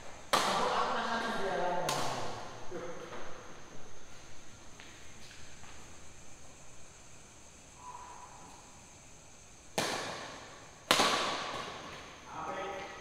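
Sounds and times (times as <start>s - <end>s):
badminton racket hitting shuttlecock: 10.9s - 12.0s.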